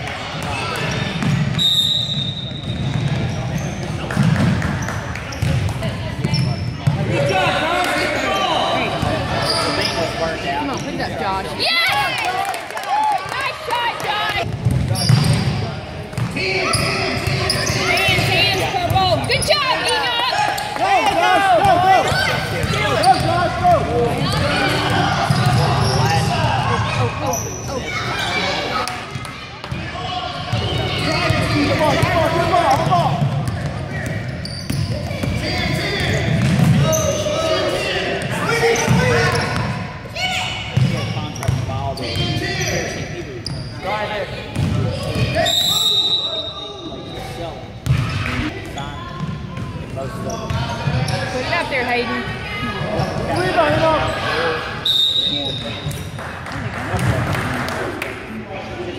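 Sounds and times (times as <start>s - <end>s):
voices echoing in a hall: 0.0s - 58.9s
basketball bouncing on wooden court: 14.5s - 15.5s, 32.7s - 35.4s.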